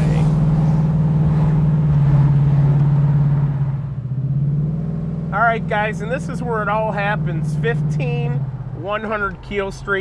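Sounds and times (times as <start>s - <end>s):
car engine cruising: 0.0s - 10.0s.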